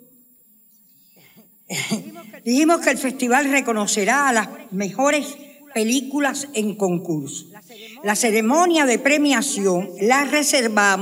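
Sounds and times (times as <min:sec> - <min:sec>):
loud cough: 0:01.7 - 0:02.4.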